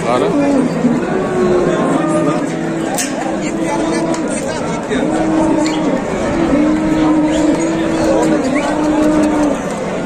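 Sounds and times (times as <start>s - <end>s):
crowd murmur: 0.0s - 10.0s
cow mooing: 0.2s - 9.7s.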